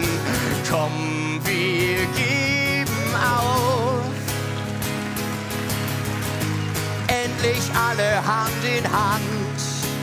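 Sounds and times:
guitar strumming chords: 0.0s - 10.0s.

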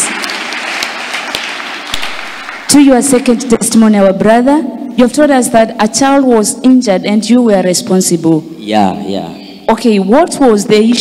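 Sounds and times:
congregation applauding: 0.0s - 2.7s.

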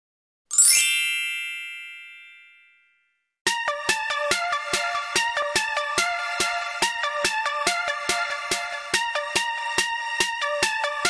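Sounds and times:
shimmering chime: 0.5s - 2.9s.

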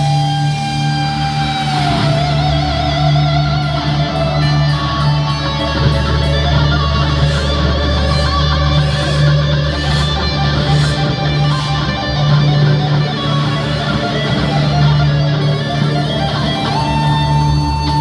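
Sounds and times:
electric guitar solo: 0.0s - 18.0s.

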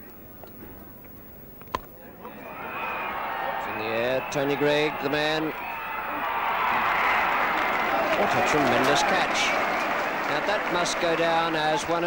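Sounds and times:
crowd noise: 2.0s - 12.0s.

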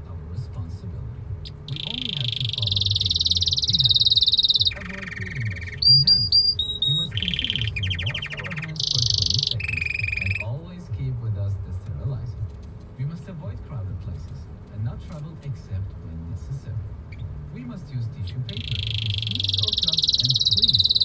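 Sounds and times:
canary singing trills: 1.4s - 10.6s, 18.3s - 21.0s.

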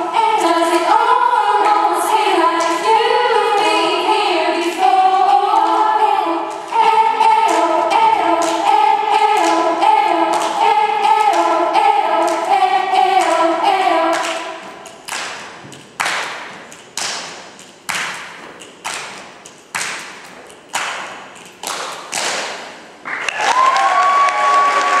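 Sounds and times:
girls singing a cappella: 0.0s - 14.8s
body-percussion beats in unison: 0.0s - 23.0s.

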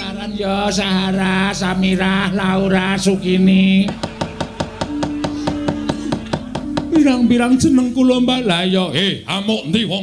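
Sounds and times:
wooden mallet knocking on wood: 3.9s - 7.0s.

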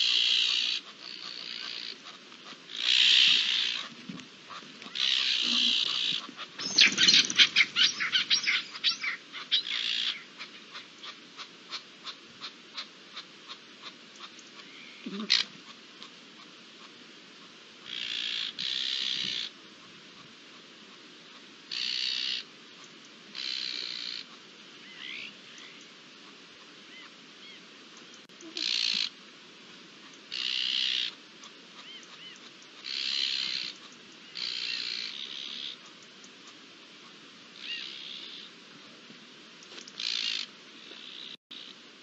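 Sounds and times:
harsh rasping bird calls: 0.0s - 17.0s, 17.8s - 20.3s, 21.4s - 29.2s, 30.0s - 38.6s, 39.7s - 41.8s.

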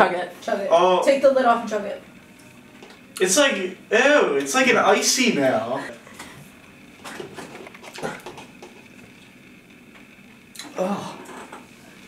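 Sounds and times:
swallowing and throat noises: 7.0s - 8.8s.

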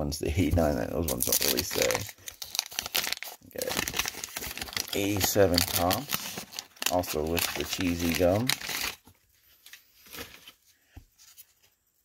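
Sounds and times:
wax paper wrapper tearing: 1.0s - 9.1s.

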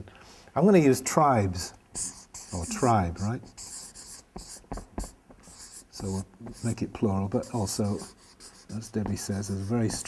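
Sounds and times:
marker pen scratching on paper: 1.9s - 10.0s.

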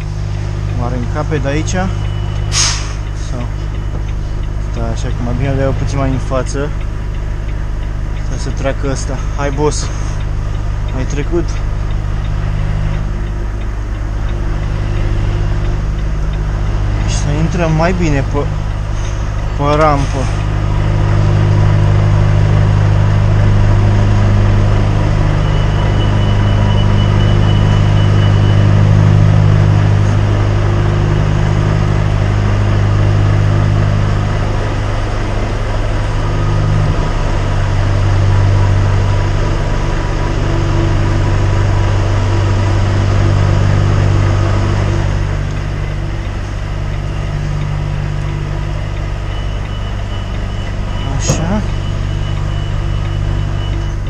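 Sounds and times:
diesel truck engine at low revs: 0.0s - 54.0s.

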